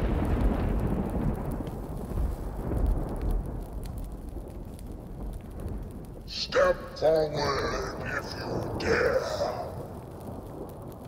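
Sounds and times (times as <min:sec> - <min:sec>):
faint crackles: 0:00.0 - 0:11.0.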